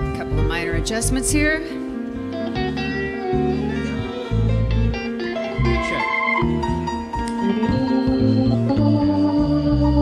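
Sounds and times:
live band playing: 0:00.0 - 0:10.0
organ-like keyboard chords: 0:00.0 - 0:10.0
bass line: 0:02.4 - 0:10.0.

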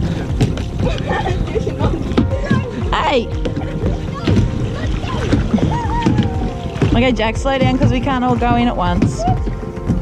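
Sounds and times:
background music: 0:00.0 - 0:10.0
paddles splashing in water: 0:00.0 - 0:10.0.

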